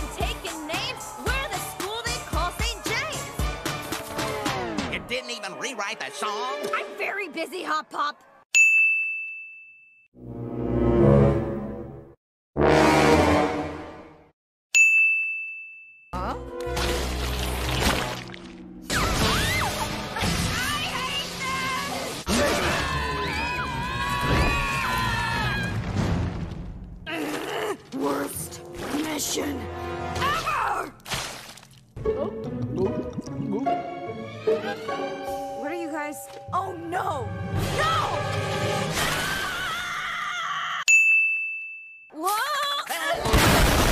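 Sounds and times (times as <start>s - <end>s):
bell ding: 8.6s - 10.1s, 14.8s - 16.1s, 40.9s - 42.2s.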